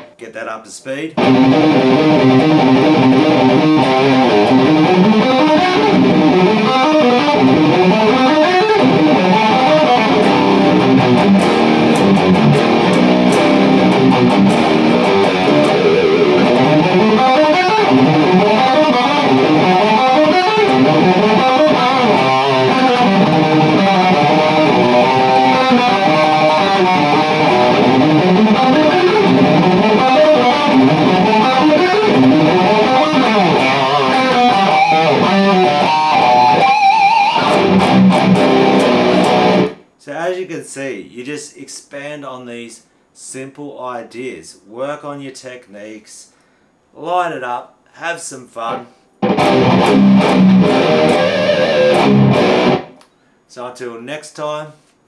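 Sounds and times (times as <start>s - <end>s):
distorted electric guitar metal riff: 1.2s - 39.8s, 48.7s - 53.0s.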